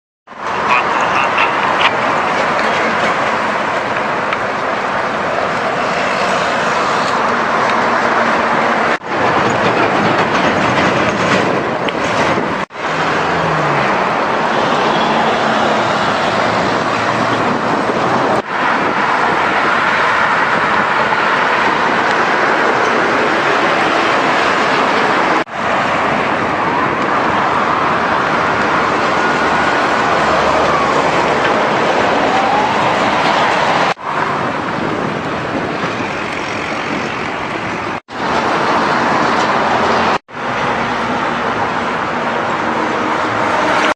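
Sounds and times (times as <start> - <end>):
highway traffic passing: 0.3 - 43.9.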